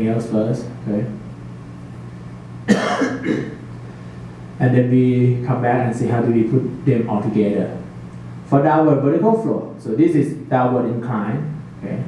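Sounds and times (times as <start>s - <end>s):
low room hum: 0.0s - 12.0s
man coughing: 2.7s - 3.6s.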